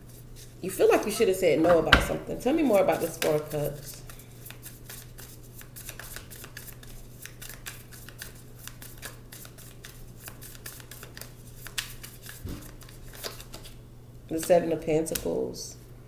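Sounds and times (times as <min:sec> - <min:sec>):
cards being shuffled: 0:04.6 - 0:13.8.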